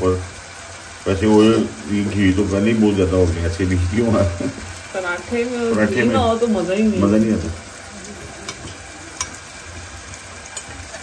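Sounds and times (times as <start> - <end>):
ghee sizzling in a pan: 0.0 - 11.0.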